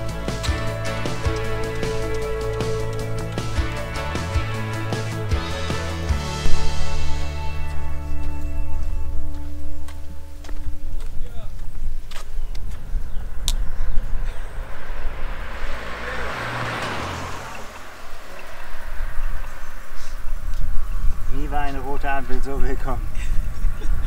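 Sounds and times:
background music: 0.0 - 11.2
vehicle passing: 0.0 - 24.0.

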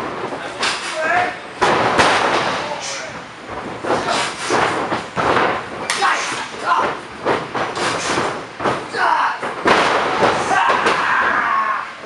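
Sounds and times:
feet shuffling on ring canvas: 2.8 - 10.5.

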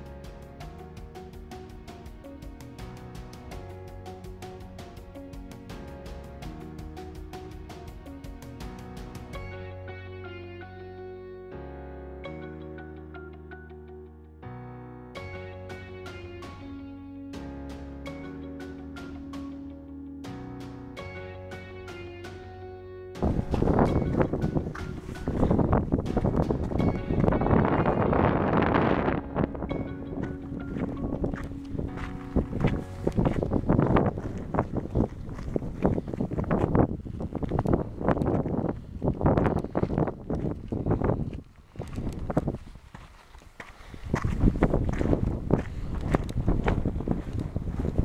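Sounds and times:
footsteps on sandy stony path: 23.2 - 28.1, 28.7 - 48.0
wind buffeting microphone: 23.2 - 48.0.

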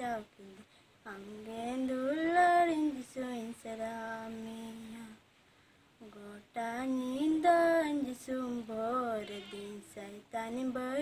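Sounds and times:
woman singing: 0.0 - 5.3, 6.0 - 11.0.

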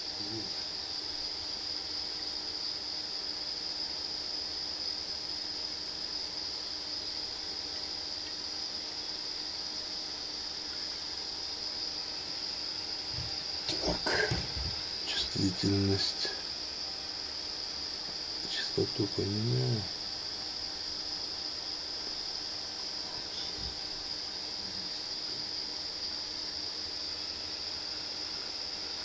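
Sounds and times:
faint low hum: 0.0 - 3.2, 6.6 - 29.0
high-pitched whine: 10.2 - 29.0.

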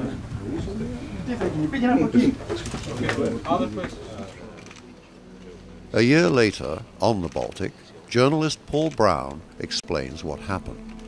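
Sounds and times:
men talking: 0.0 - 4.8, 5.4 - 10.8.

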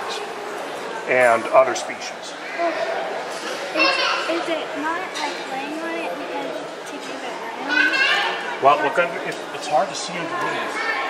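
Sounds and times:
background chatter: 0.0 - 11.0
children talking: 0.0 - 11.0.

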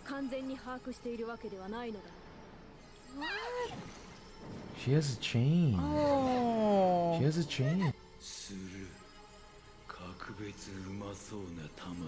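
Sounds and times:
high-pitched wavering cry: 3.1 - 4.1.

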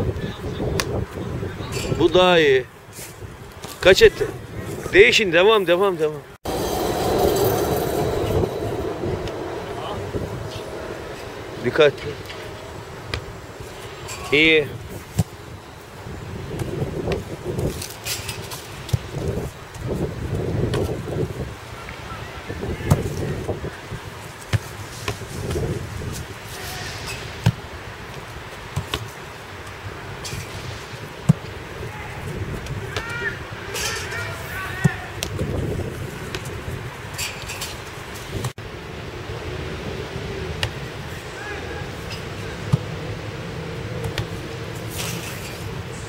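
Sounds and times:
outdoor background noise: 0.0 - 46.0.

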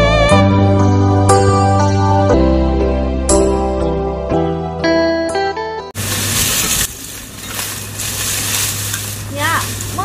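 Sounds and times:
hoes scraping through dry stalks: 6.0 - 10.0.

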